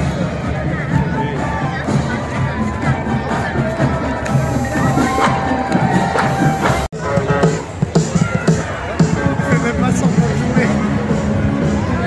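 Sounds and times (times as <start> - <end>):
crowd chatter: 0.0 - 12.0
marching band flutes: 0.8 - 9.4.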